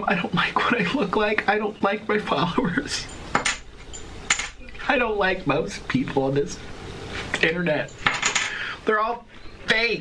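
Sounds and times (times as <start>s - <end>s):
faint noise: 0.0s - 10.0s.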